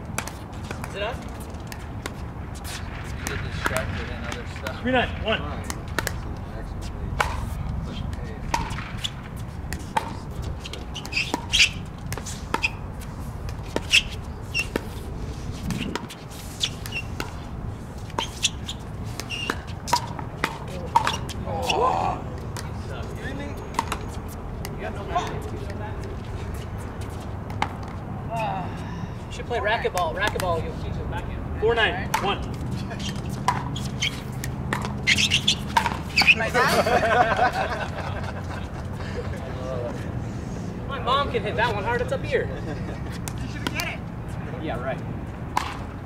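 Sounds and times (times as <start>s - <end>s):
paddles hitting plastic ball: 5.6s - 6.4s, 18.2s - 21.4s, 29.9s - 30.6s, 32.1s - 36.4s, 45.5s - 46.0s.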